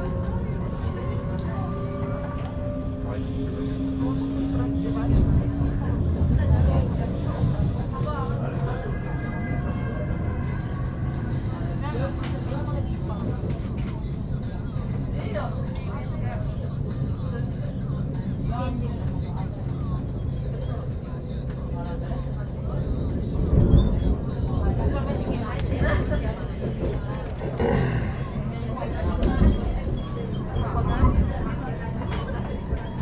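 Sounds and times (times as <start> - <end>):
faint passenger chatter: 0.0 - 33.0
train rumble from inside carriage: 0.0 - 33.0.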